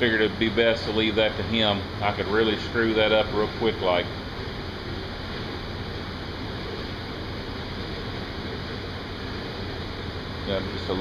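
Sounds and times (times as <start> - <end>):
air blower rushing with whine: 0.0 - 11.0.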